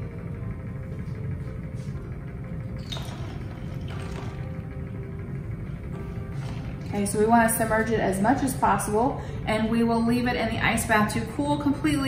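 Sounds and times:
faint background music: 0:00.0 - 0:12.0
steady low rumble: 0:00.0 - 0:12.0.

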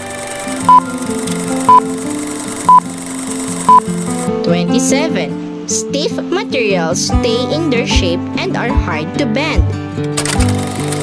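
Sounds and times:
light background music: 0:00.0 - 0:11.0
loud single-pitch beep: 0:00.7 - 0:00.9, 0:01.7 - 0:01.9.

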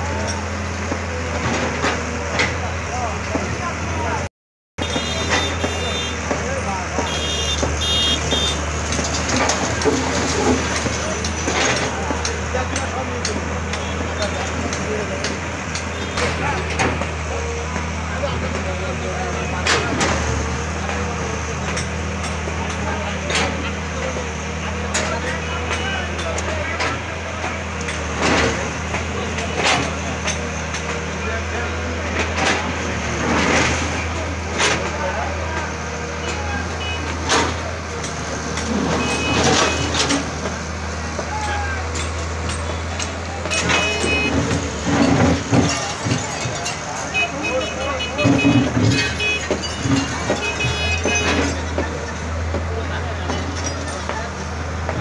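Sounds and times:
excavator diesel engine running: 0:00.0 - 0:55.0
masonry knocking and crashing: 0:37.1 - 0:55.0.

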